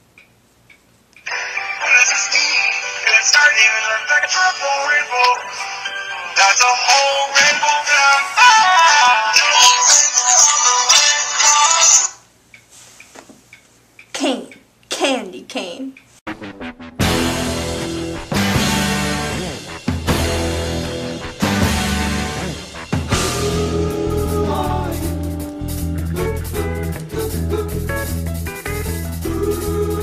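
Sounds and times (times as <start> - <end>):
phone ringtone song with vocals: 1.3 - 12.2.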